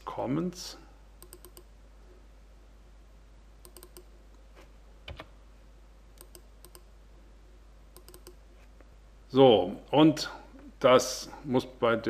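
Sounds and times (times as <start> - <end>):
computer keys clicking: 1.2 - 1.7, 3.6 - 4.1, 5.1 - 5.3, 6.2 - 6.9, 7.9 - 8.4.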